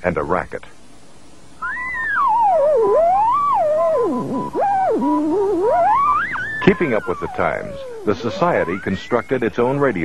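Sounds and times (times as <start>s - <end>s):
faint steady tone: 1.2s - 10.0s
wavering electronic whistle tone: 1.6s - 10.0s.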